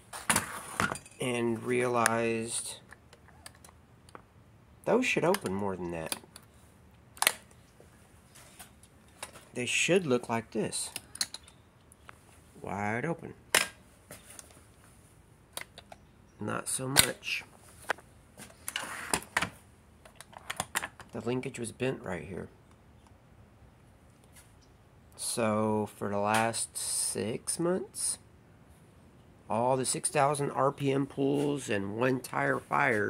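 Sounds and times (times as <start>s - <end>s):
man talking: 1.2s - 2.9s, 4.8s - 6.2s, 9.5s - 11.0s, 12.6s - 13.4s, 16.4s - 17.5s, 21.1s - 22.6s, 25.2s - 28.2s, 29.5s - 33.0s.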